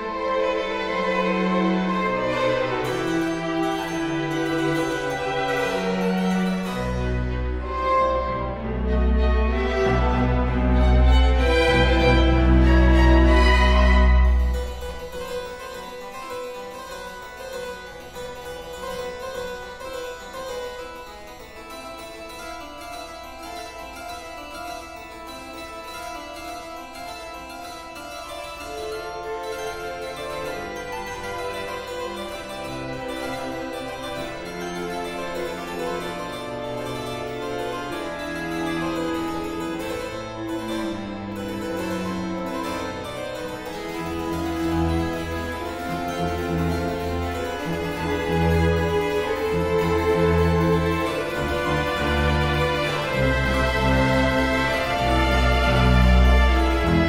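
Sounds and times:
harpsichord and strings playing: 0.0s - 57.0s.

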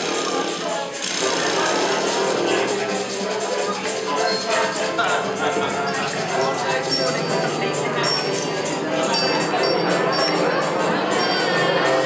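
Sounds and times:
crowd voices: 0.0s - 12.0s
fast rattling percussion: 0.0s - 12.0s
instruments being tried out: 0.0s - 12.0s.

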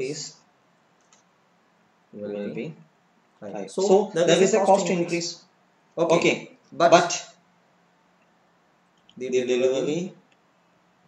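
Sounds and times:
man speaking: 3.4s - 7.4s, 9.2s - 10.2s.

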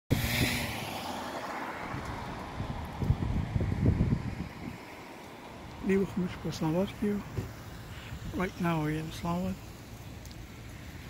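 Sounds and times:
wind buffeting microphone: 0.1s - 6.6s.

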